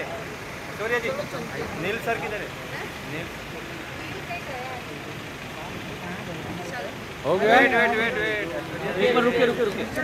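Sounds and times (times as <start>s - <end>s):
faint voices talking: 0.0s - 10.0s
street noise: 0.0s - 10.0s.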